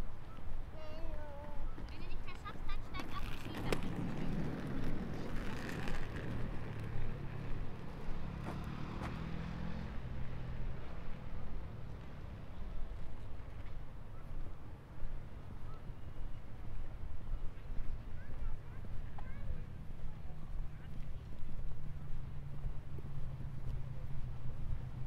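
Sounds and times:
road traffic rumble: 0:00.0 - 0:25.0.

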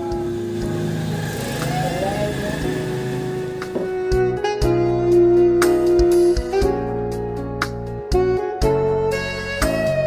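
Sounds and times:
motor vehicle passing: 0:00.0 - 0:04.9
music with held notes: 0:00.0 - 0:10.0
person speaking: 0:01.6 - 0:03.0.

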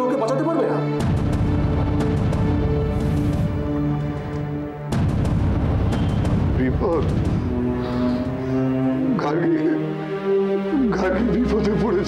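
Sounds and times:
dramatic held chord music: 0:00.0 - 0:12.0.

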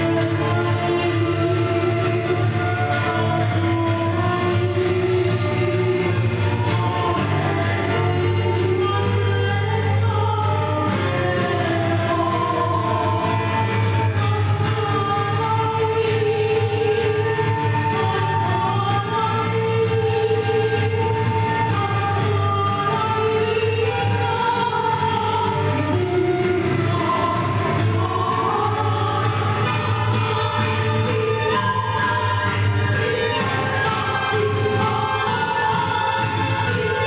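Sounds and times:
bowed strings: 0:00.0 - 0:37.0
cello: 0:00.0 - 0:37.0
guitar: 0:00.0 - 0:37.0
woman singing into microphone: 0:00.0 - 0:37.0
flute melody: 0:10.8 - 0:37.0.

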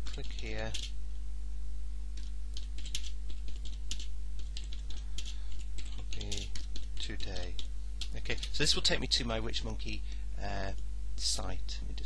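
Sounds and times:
computer keyboard typing: 0:00.0 - 0:00.9, 0:02.2 - 0:08.6
low electrical hum: 0:00.0 - 0:12.0.

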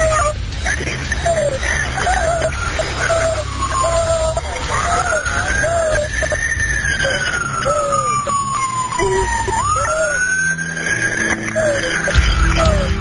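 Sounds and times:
emergency siren wailing: 0:00.0 - 0:13.0.

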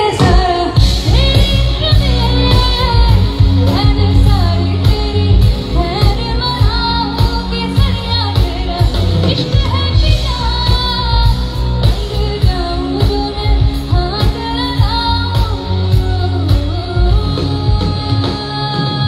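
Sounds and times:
band with drums: 0:00.0 - 0:19.0
steady bass line: 0:00.0 - 0:19.0
woman singing into a microphone: 0:00.0 - 0:19.0.

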